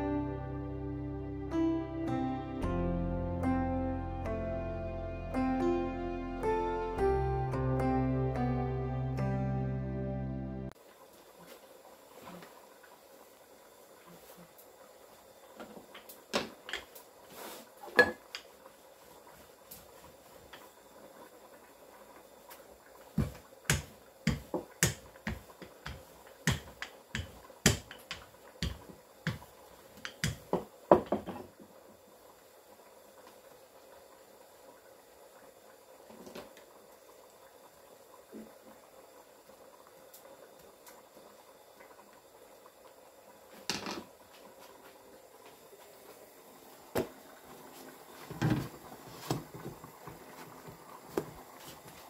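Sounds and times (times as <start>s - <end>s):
rolling pin knocking on countertop: 23.2s - 31.5s.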